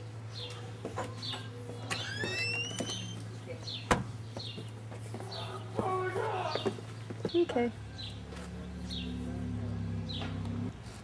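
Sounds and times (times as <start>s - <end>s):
door hinge squeaking: 1.9s - 3.3s.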